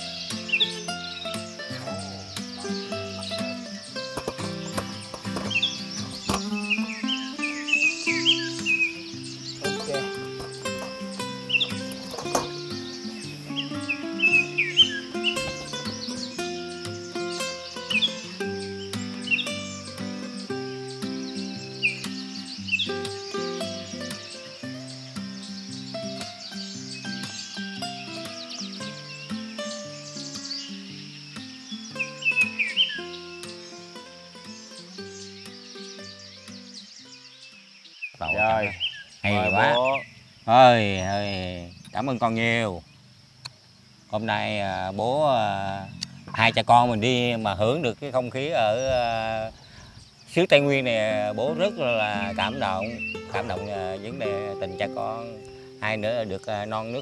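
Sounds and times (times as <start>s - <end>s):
instrumental background music: 0.0s - 39.8s, 50.3s - 57.0s
bird chirps: 0.0s - 57.0s.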